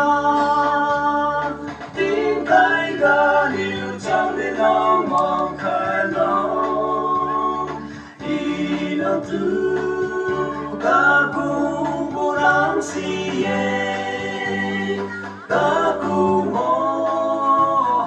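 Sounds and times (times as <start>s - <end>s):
men singing unaccompanied: 0.0s - 18.0s.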